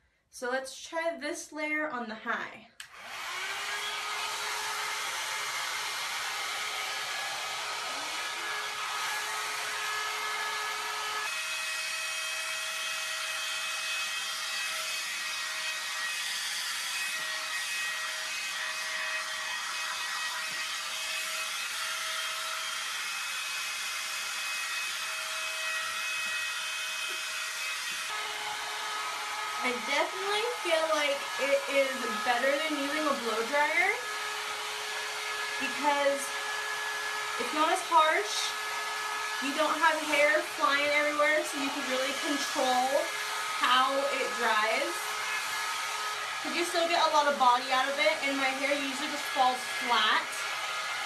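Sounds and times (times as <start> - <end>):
hot air brush blowing: 2.8 - 51.0.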